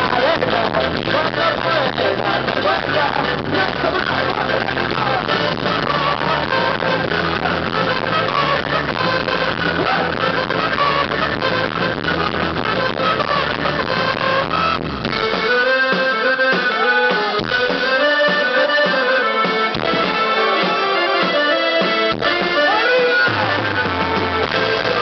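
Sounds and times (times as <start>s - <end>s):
electric bass: 0.0s - 20.4s, 22.1s - 25.0s
drums: 0.0s - 25.0s
electric guitar: 0.0s - 25.0s
trumpet playing: 0.0s - 25.0s.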